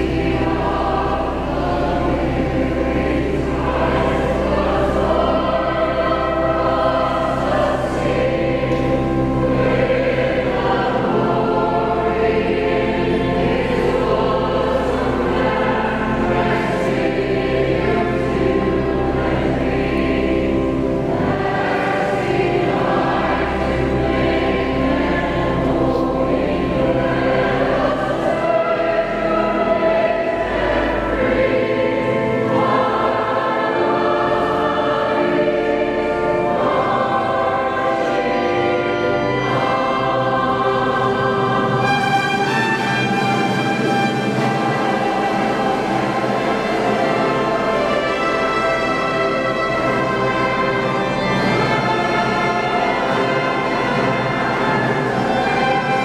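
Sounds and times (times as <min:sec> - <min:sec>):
choir singing sustained chords: 0:00.0 - 0:56.0.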